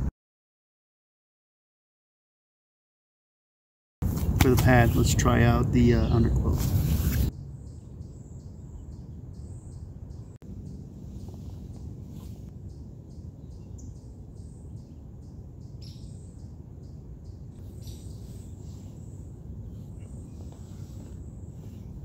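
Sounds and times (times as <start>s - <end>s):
insects chirping: 7.3s - 22.0s
short bird chirps: 17.3s - 22.0s.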